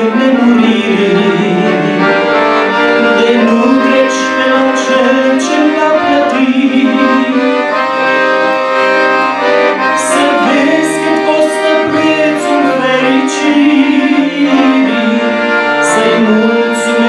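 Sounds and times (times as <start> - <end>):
accordion playing a hymn: 0.0 - 17.0.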